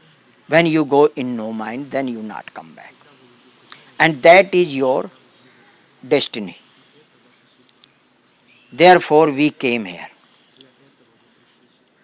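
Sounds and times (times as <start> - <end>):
distant birds chirping: 0.0 - 12.0.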